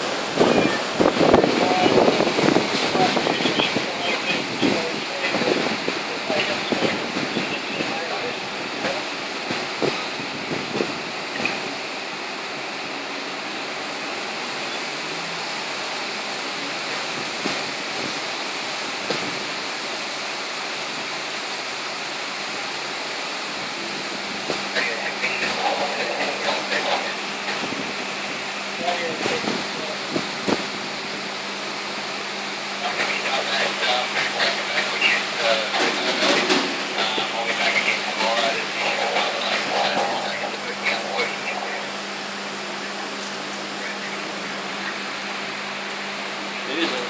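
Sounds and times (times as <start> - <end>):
strong wind gusts: 0.0 - 46.6
heavy rain downpour: 0.0 - 47.0.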